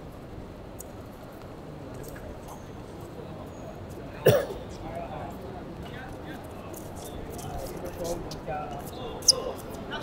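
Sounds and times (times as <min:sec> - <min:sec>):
person coughing: 0:04.2 - 0:04.6.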